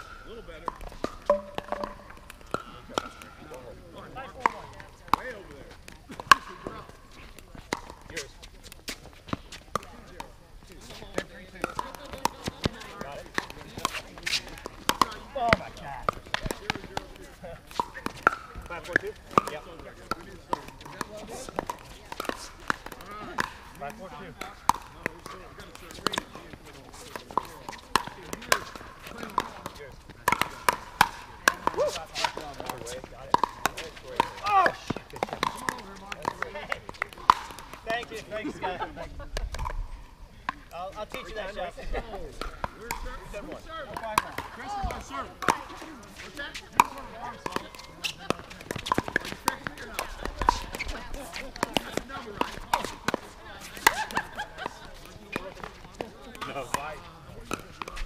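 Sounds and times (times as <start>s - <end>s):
ball bouncing on court: 0.0s - 10.3s, 10.9s - 38.2s, 39.4s - 39.9s, 42.3s - 58.0s
paddles hitting plastic ball: 0.0s - 38.6s, 39.3s - 41.4s, 42.2s - 58.0s.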